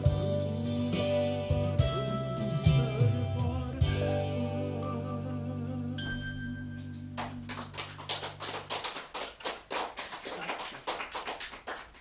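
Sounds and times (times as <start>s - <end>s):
audience applauding: 7.2s - 12.0s.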